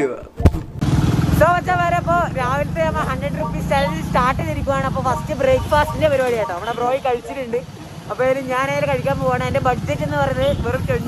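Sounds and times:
road and wind noise: 0:00.4 - 0:11.0
motorcycle engine running: 0:00.5 - 0:06.7, 0:07.6 - 0:11.0.

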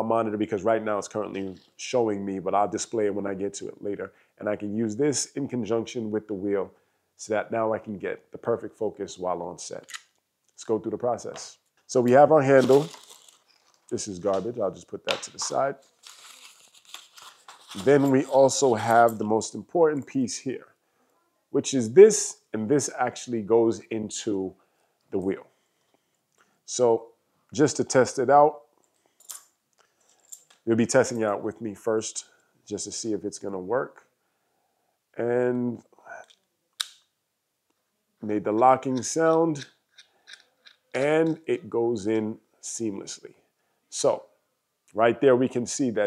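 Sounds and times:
man talking: 0:00.0 - 0:10.0, 0:10.6 - 0:13.0, 0:13.9 - 0:15.8, 0:17.8 - 0:20.8, 0:21.6 - 0:25.5, 0:26.7 - 0:28.6, 0:30.6 - 0:34.0, 0:35.2 - 0:36.3, 0:38.2 - 0:39.7, 0:41.0 - 0:44.3, 0:44.9 - 0:46.0
packaging crinkling and rustling: 0:12.1 - 0:14.5, 0:15.3 - 0:19.0.

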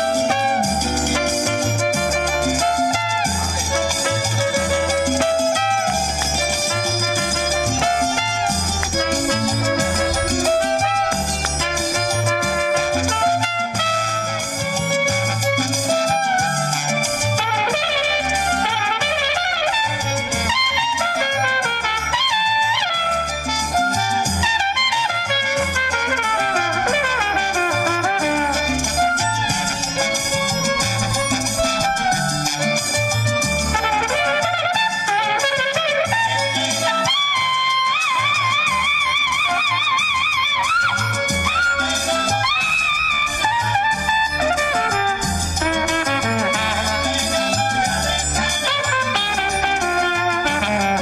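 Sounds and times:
violin melody: 0:00.0 - 0:23.9, 0:24.8 - 0:51.0
bass line: 0:00.0 - 0:51.0
instrumental salsa music: 0:00.0 - 0:51.0
trumpet: 0:00.0 - 0:51.0.

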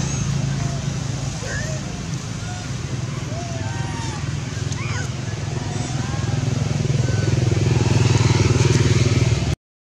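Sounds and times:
engine running steadily: 0:00.0 - 0:09.6.

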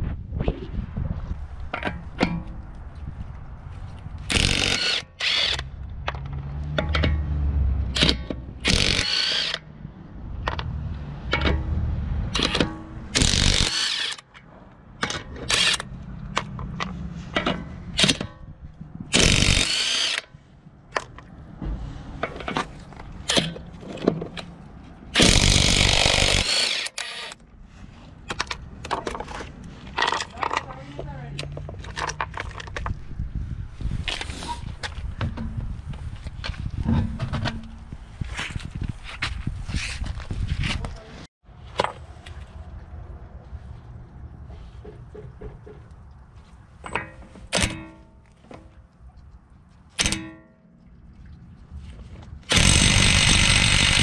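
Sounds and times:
impact wrench hammering: 0:08.0 - 0:09.6, 0:12.4 - 0:14.2, 0:19.2 - 0:20.3, 0:25.2 - 0:27.4, 0:52.5 - 0:54.0.

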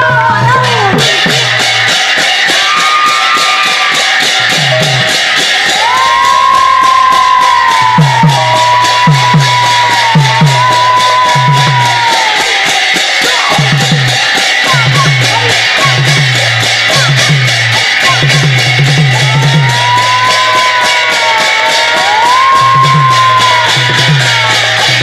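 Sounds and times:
brass cymbals clashing: 0:00.0 - 0:25.0
deep drum strokes bending in pitch: 0:00.0 - 0:25.0.

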